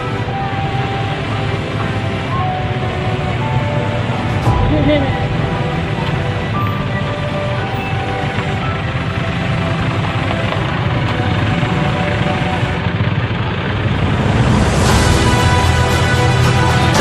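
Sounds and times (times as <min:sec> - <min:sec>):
background music: 0:00.0 - 0:17.0
vehicle engines and road rumble: 0:00.0 - 0:17.0.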